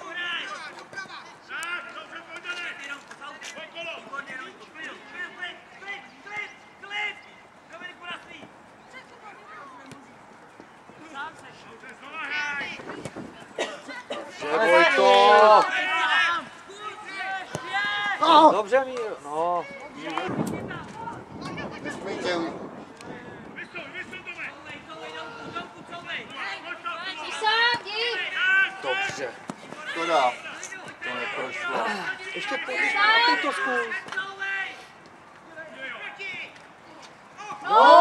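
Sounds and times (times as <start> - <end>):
outdoor ambience: 0.0 - 38.0
people calling out: 13.7 - 18.5, 23.6 - 34.8, 35.7 - 38.0
men shouting: 14.4 - 18.5, 26.4 - 34.8, 37.4 - 38.0.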